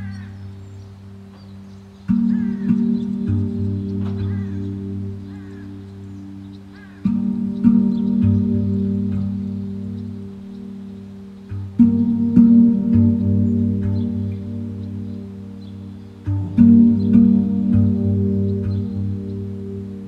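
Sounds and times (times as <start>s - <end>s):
handpan deep notes ringing: 0.0s - 20.0s.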